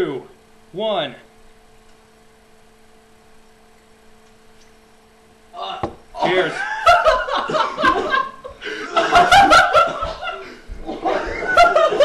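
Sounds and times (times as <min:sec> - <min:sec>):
men speaking words: 0:05.6 - 0:06.7
young men laughing: 0:06.2 - 0:12.0.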